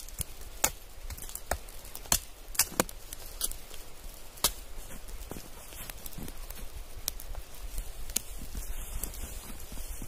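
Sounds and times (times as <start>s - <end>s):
footsteps crunching in snow: 3.3s - 10.0s.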